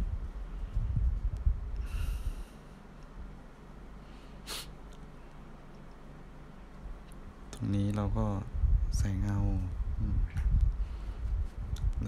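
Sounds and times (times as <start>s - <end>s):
soft nasal breath: 1.8s - 2.9s, 4.0s - 5.5s, 10.8s - 11.6s
sharp sniff: 4.1s - 4.8s
low rumble: 7.6s - 12.0s.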